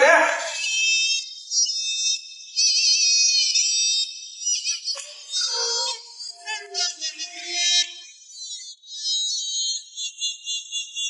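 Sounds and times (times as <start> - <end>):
person speaking: 0.0 - 0.8.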